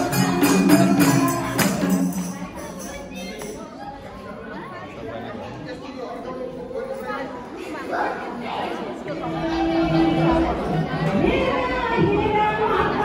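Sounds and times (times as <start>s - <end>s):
chatter of many people: 0.0s - 13.0s.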